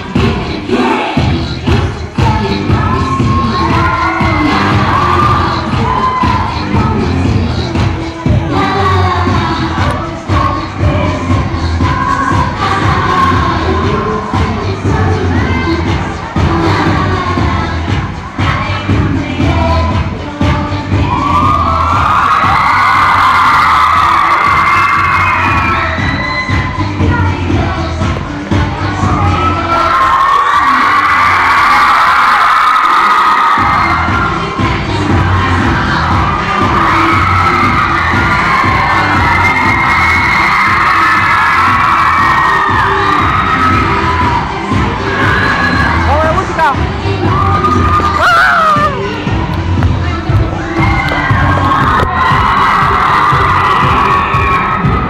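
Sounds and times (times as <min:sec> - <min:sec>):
crowd screaming and cheering: 0:00.0 - 0:55.0
dance music with steady beat: 0:00.0 - 0:55.0.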